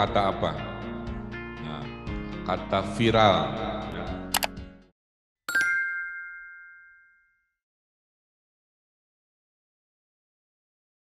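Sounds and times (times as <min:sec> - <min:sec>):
bright chime ding: 0:05.5 - 0:07.5.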